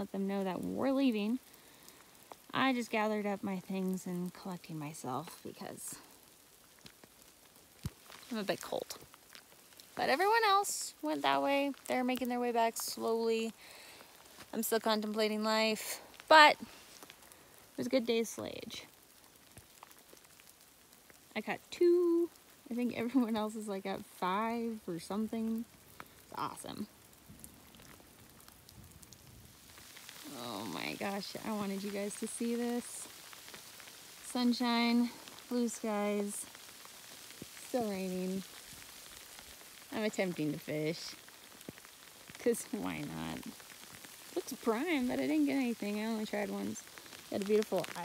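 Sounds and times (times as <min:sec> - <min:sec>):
light rain patter: 0:00.0 - 0:48.0.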